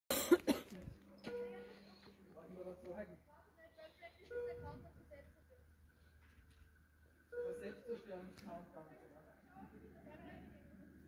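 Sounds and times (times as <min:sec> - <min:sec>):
person coughing: 0:00.1 - 0:00.8.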